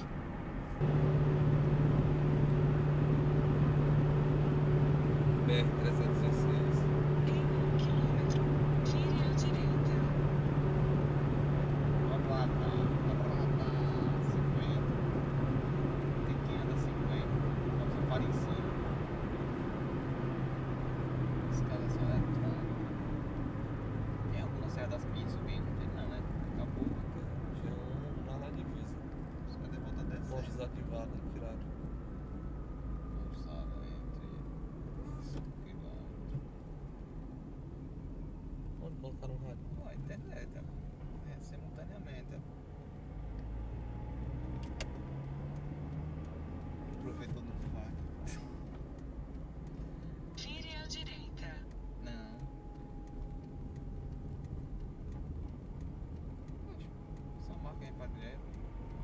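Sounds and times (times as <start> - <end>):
car engine hum: 0.0 - 59.0
road noise inside car: 0.0 - 59.0.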